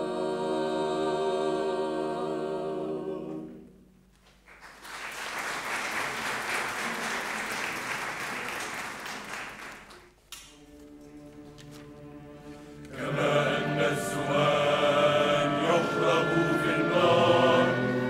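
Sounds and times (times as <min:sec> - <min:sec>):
audience applauding: 0:04.3 - 0:10.2
held instrumental chord: 0:10.6 - 0:18.0.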